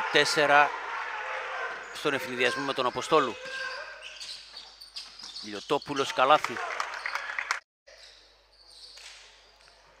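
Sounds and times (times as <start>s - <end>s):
shoe squeaks: 2.7s - 6.2s, 7.9s - 9.8s.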